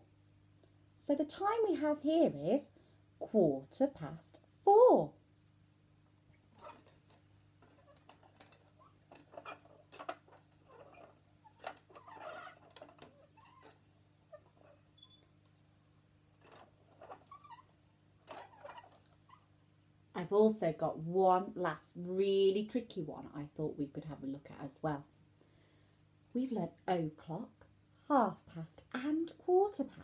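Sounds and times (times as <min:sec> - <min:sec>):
plastic clock clicks and rustles: 0:06.7 - 0:13.8.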